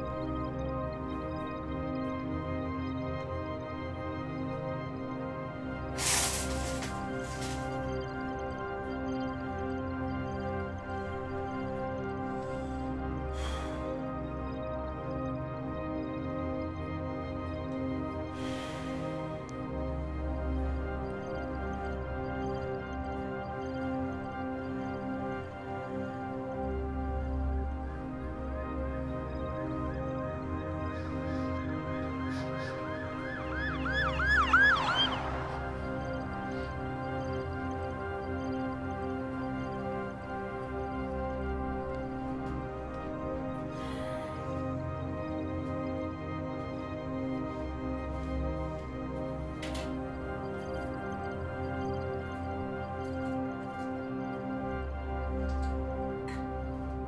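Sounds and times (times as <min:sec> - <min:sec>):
soft background music: 0:00.0 - 0:57.0
warbling electronic siren: 0:30.1 - 0:39.0.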